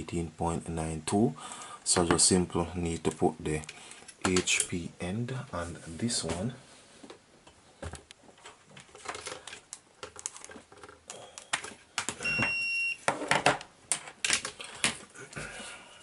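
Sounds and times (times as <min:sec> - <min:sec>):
charger and cables on wooden desk: 0:07.0 - 0:15.2
electronic beep: 0:12.2 - 0:13.0.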